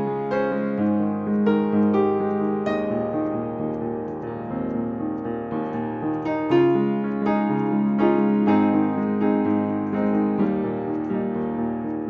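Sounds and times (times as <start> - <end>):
slow soft piano: 0.0 - 12.0.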